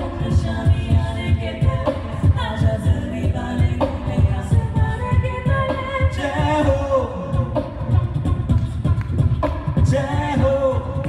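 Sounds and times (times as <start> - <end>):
group singing into microphones: 0.0 - 11.0
low thumping beat: 0.0 - 11.0.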